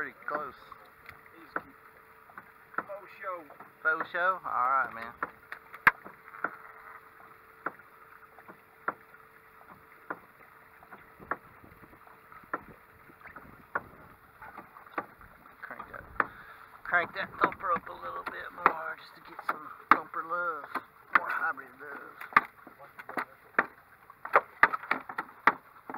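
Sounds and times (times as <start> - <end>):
faint steady hum: 0.0 - 25.9
thumper knocking on boat hull: 10.9 - 15.2, 15.8 - 21.3, 22.3 - 25.9.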